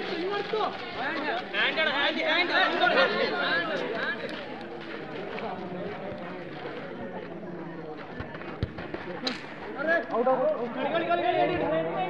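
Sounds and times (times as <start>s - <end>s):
running footsteps on dirt: 0.0s - 11.7s.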